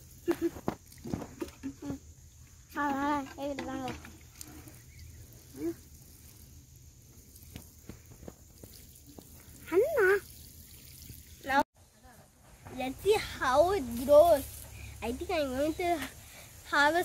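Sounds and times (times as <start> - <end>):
water sprinkling onto soil: 0.0 - 11.6, 12.5 - 17.0
child's voice: 2.7 - 4.1, 9.6 - 10.3, 11.4 - 17.0.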